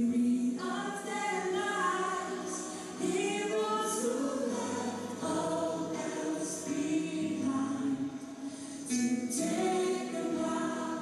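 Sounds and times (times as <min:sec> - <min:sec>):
group singing worship song: 0:00.0 - 0:11.0.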